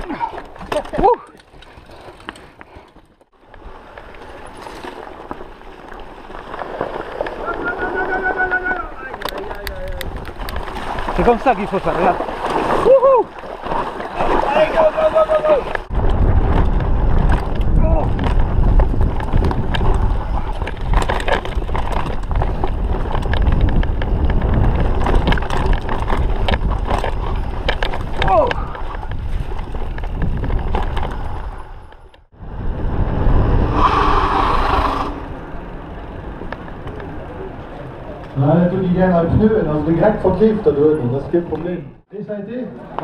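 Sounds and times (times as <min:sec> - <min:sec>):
bike rattling and clicking: 0:00.0 - 0:32.3, 0:34.5 - 0:41.8
bike tyre rumble: 0:00.0 - 0:42.0
wind rushing over microphone: 0:15.6 - 0:36.8.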